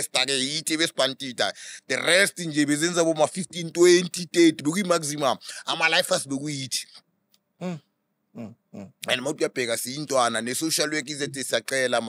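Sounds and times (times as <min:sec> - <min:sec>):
man grunting mm: 0:07.6 - 0:09.0.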